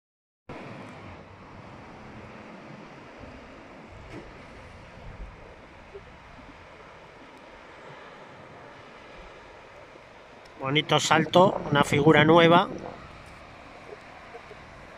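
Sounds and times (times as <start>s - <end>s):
distant surf breaking: 0.5s - 14.9s
wind on microphone: 0.6s - 14.9s
low rumble: 10.6s - 14.9s.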